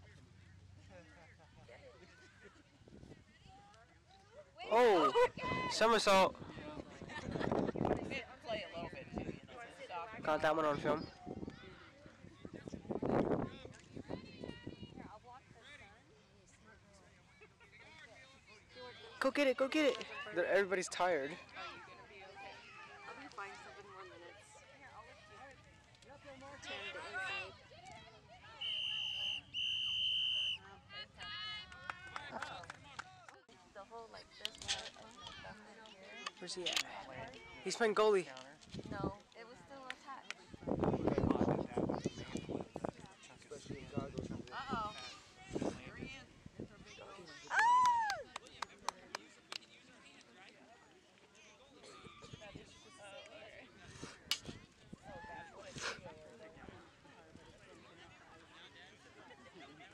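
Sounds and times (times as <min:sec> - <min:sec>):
children's and spectators' voices: 0:00.0 - 0:59.9
referee's whistle blasts: 0:28.6 - 0:30.6.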